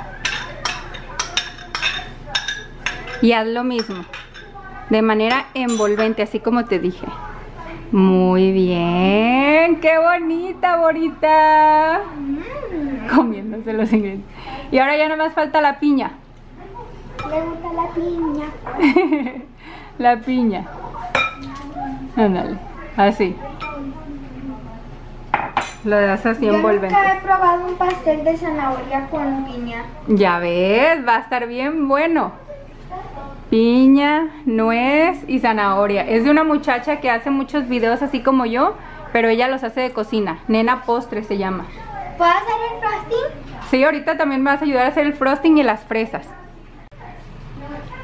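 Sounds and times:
kitchen utensils clattering in bowl: 0.1 - 6.3, 21.0 - 21.8
metal spoon clinking against cup: 3.8 - 4.5, 5.6 - 6.2
sharp ceramic clink: 5.6 - 6.1, 21.1 - 21.5.

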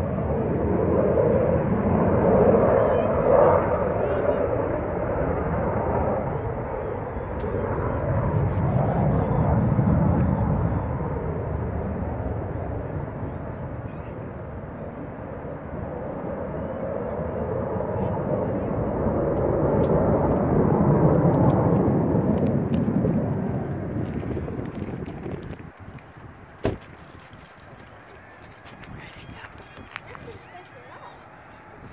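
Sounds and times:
jet engines passing overhead: 0.0 - 31.9.

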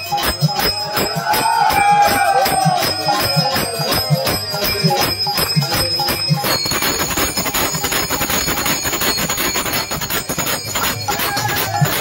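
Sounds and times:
hand cymbals clashing: 0.0 - 12.0.

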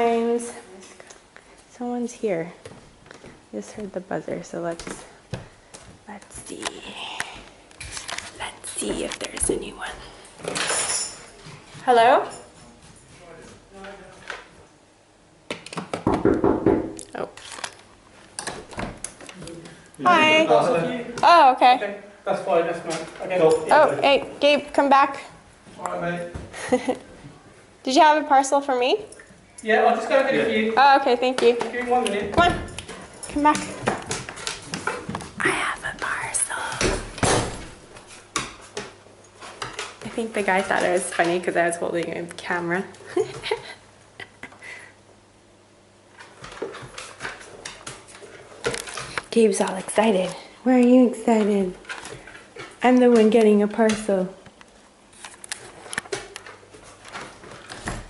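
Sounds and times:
woman speaking: 0.0 - 0.8, 1.7 - 2.6, 3.5 - 5.1, 6.1 - 7.4, 8.4 - 10.1, 11.8 - 12.4, 20.0 - 21.8, 23.7 - 25.4, 27.8 - 29.1, 30.8 - 31.7, 40.0 - 43.0, 49.3 - 51.8, 52.8 - 54.4.

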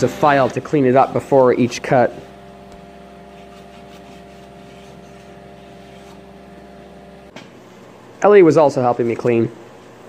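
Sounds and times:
electric motor hum: 0.0 - 8.2.

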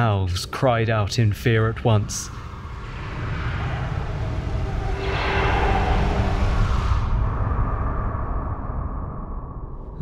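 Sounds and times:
spaceship engine rumble: 1.1 - 10.0.

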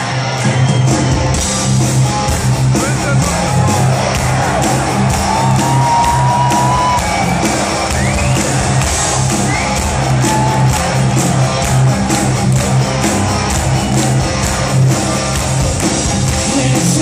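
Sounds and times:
fans cheering and whooping: 0.0 - 17.0
heavy metal band with orchestra: 0.0 - 17.0.

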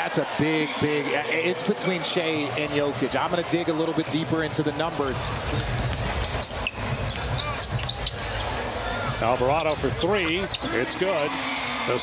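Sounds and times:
arena crowd din: 0.0 - 12.0
short high squeaks: 6.0 - 9.3.

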